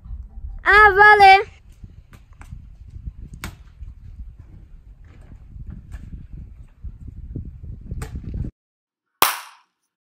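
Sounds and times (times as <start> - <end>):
wind rumble on microphone: 0.0 - 8.6
sharp crack with ringing tail: 9.2 - 9.8.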